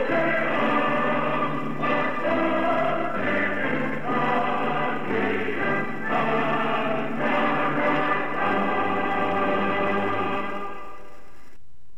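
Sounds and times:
choir singing held chords: 0.0 - 11.2.

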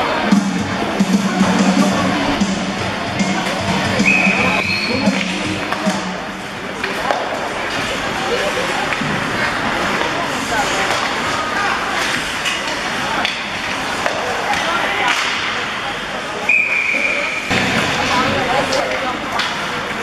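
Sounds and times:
spectators chattering: 0.0 - 20.0
hockey sticks and skates on ice: 3.2 - 20.0
referee's whistle: 4.0 - 5.1, 16.5 - 17.5.

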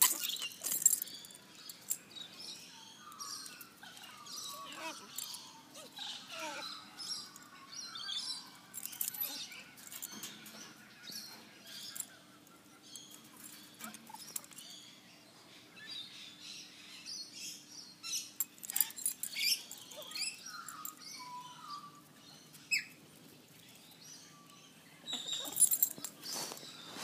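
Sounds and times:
small birds chirping: 0.0 - 27.0.

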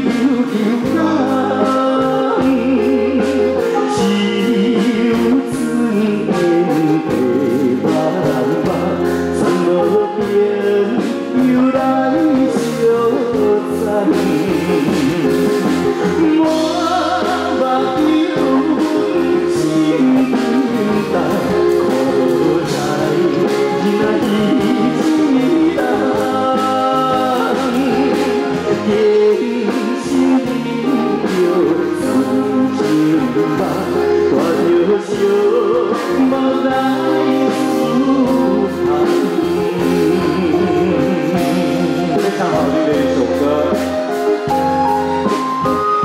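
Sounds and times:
live band music: 0.0 - 46.0
men singing into microphones: 0.0 - 46.0.

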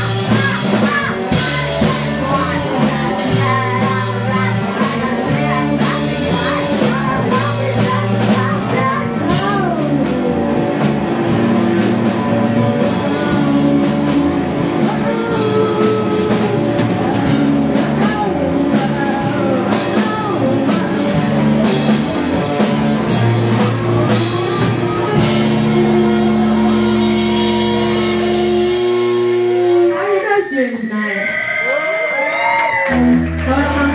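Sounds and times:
woman singing: 0.0 - 10.2, 14.8 - 21.4, 33.0 - 33.9
drum kit: 0.0 - 30.8, 32.4 - 33.9
electric guitars: 0.0 - 33.9.

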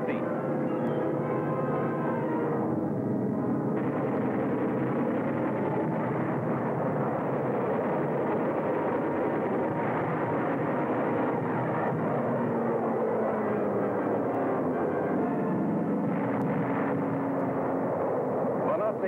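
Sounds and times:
aircraft engines droning: 0.0 - 19.0.

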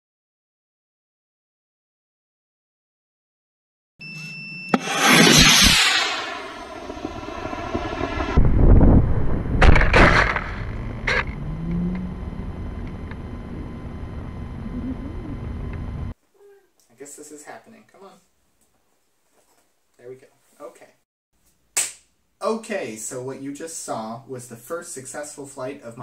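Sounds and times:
short beep: 4.0 - 5.4
rocket motor hissing: 4.8 - 8.3
wind rushing past: 4.8 - 11.0.

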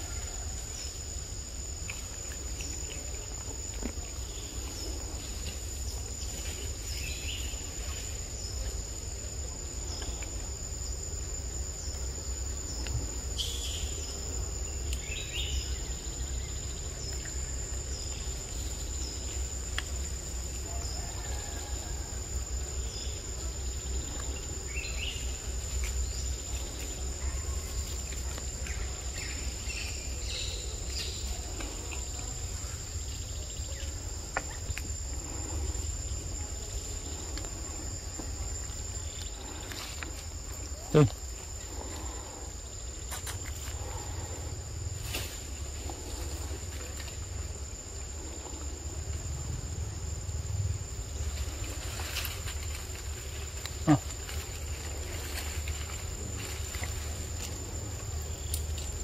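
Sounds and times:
insects droning: 0.0 - 59.0.

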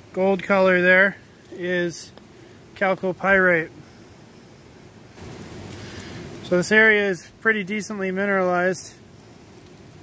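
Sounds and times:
outdoor background rush: 0.0 - 10.0.

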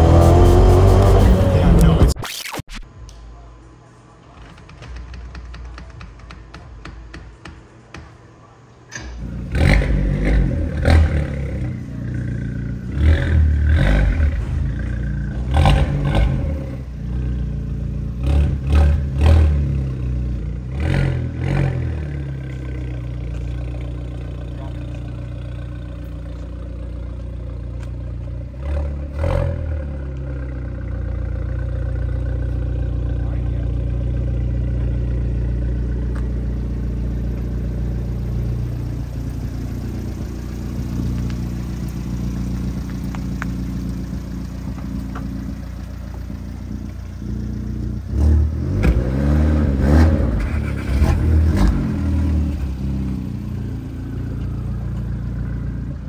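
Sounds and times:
car engine pulling hard: 0.0 - 2.2, 9.2 - 56.0.

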